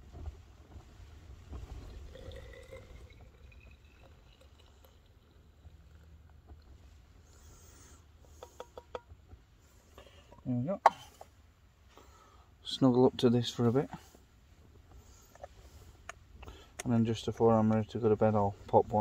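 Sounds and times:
water poured into hot water bottle: 1.6 - 6.8.

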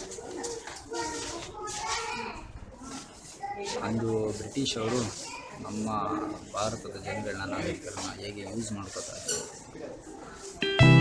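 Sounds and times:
people's voices in background: 0.0 - 10.8.

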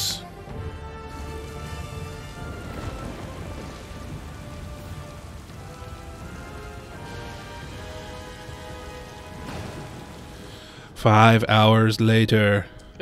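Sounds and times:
steady rain falling: 0.0 - 12.2.

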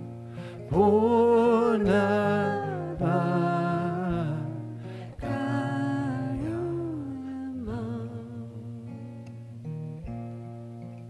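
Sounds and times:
acoustic guitar: 0.0 - 11.0
woman singing: 0.7 - 9.3.

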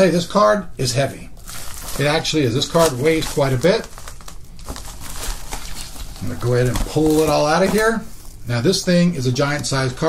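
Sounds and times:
plastic bag crinkling: 1.4 - 8.6.

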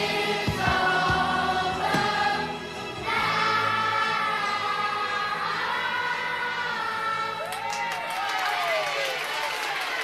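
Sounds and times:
choir holding a chord: 0.0 - 7.4
crowd cheering and calling out: 0.0 - 10.0
people clapping: 7.4 - 10.0.

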